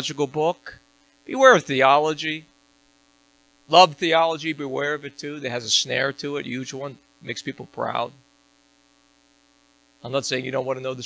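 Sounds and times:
faint electrical mains hum: 0.0s - 11.0s.

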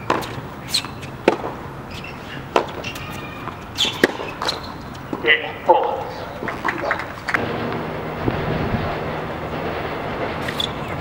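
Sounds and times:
tennis ball hit by rackets: 0.0s - 1.6s, 2.5s - 5.2s
wind noise on microphone: 6.4s - 11.0s.

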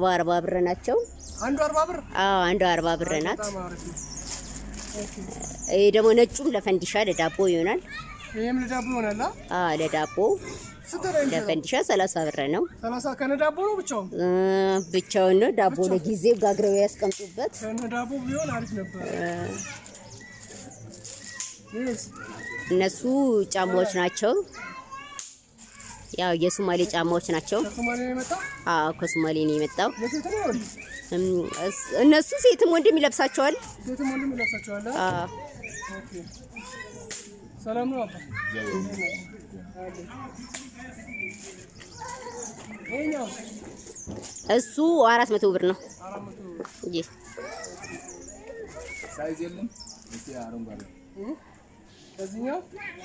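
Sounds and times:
faint voices: 14.1s - 53.0s.

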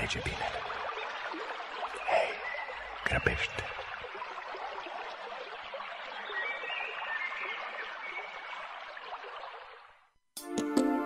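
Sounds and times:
stream water flowing: 0.0s - 10.2s.

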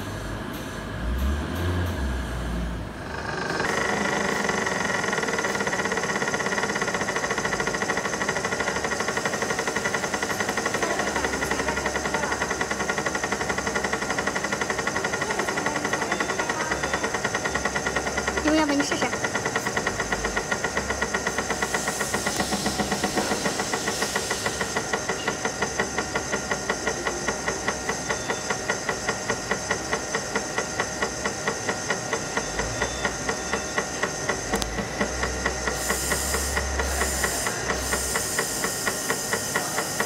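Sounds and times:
laser engraving machine buzzing: 2.9s - 40.0s.

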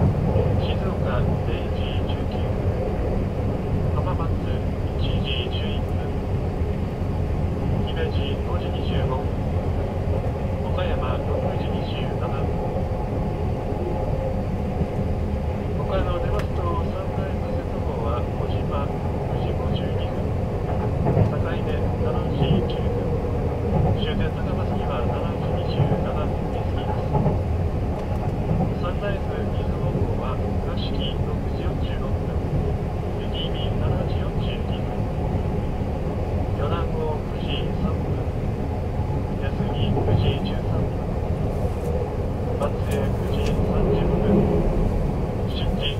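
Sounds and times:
train running rumble: 0.0s - 45.9s
faint announcement over speaker: 4.0s - 6.2s, 28.8s - 32.5s, 33.2s - 35.0s, 36.6s - 38.2s, 45.5s - 45.9s.

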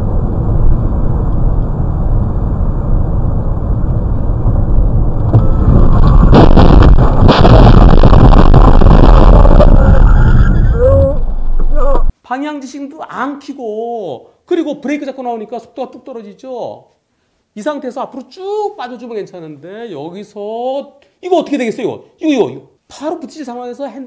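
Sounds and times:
loud distorted crash noise: 3.9s - 12.1s
car crash impacts: 5.2s - 9.4s.

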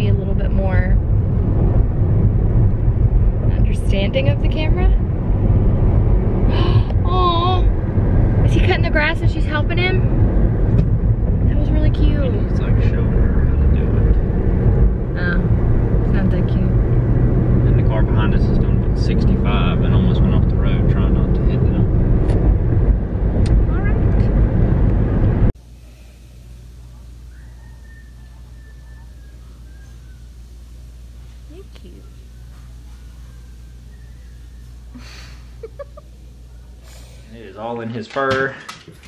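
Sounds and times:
car road and engine rumble: 0.0s - 39.0s.

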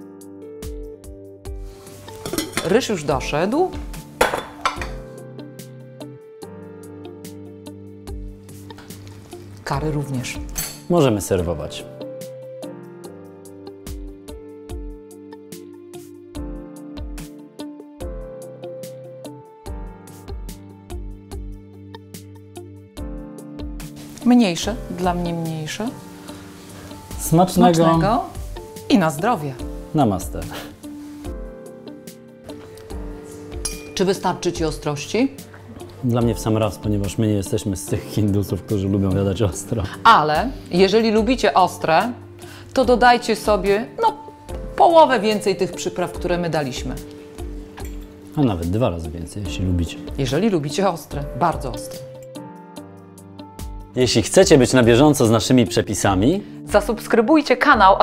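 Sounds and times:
background music: 0.0s - 58.0s
forks clinking on plates: 2.2s - 2.8s, 10.5s - 10.9s, 33.6s - 34.0s
metal pot lid clanking: 2.2s - 2.9s, 4.2s - 5.0s, 10.6s - 10.9s, 33.6s - 34.2s.

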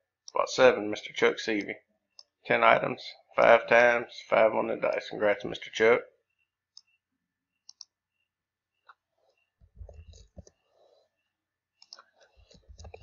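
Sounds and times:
computer mouse clicks: 6.7s - 7.0s, 7.6s - 8.0s, 8.8s - 10.6s, 11.8s - 13.0s.

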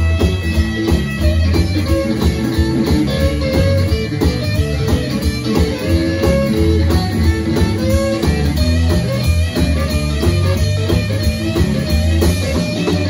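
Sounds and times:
amplified harmonica: 0.0s - 13.0s
drum kit steady beat: 0.0s - 13.0s
electric bass: 0.0s - 13.0s
electric guitar: 0.0s - 13.0s.

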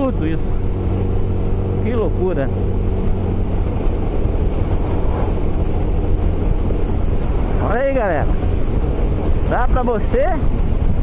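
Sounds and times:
wind rushing past: 0.0s - 11.0s.

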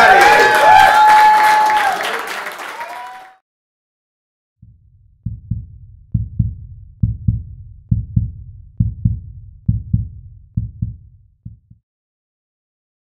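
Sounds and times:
heartbeat-like double thumps: 4.6s - 11.8s.

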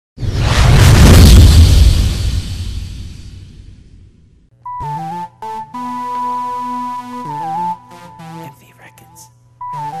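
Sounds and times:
low boom rumble: 0.2s - 4.5s.

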